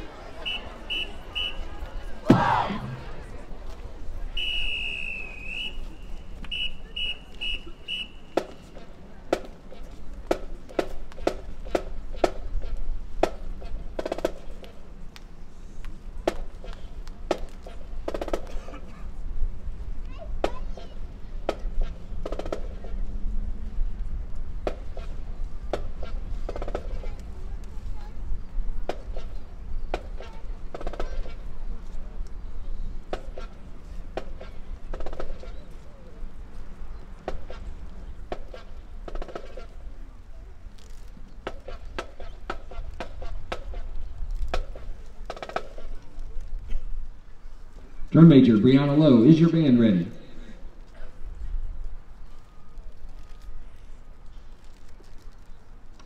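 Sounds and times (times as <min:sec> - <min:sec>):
distant voices: 0:00.0 - 0:09.1.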